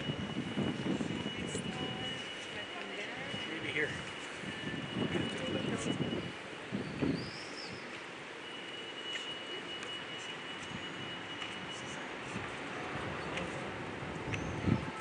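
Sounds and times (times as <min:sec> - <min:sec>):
murmur of distant voices: 0:00.0 - 0:15.0
bird chirp: 0:06.8 - 0:08.0.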